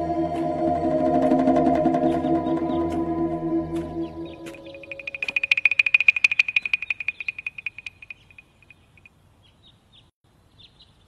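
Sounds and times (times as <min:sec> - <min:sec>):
fast trilling animal call: 0:04.1 - 0:08.7.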